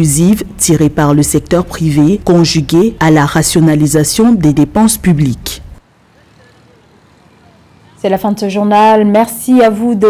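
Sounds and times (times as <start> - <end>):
faint road traffic: 0.0 - 10.0.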